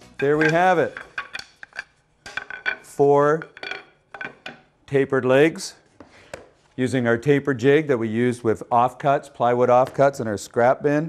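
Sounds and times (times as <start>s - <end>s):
wooden pieces clacking: 0.0s - 4.7s.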